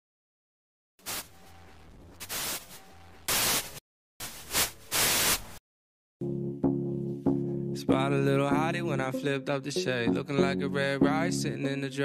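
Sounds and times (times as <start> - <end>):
bursts of static hiss: 1.0 - 5.6.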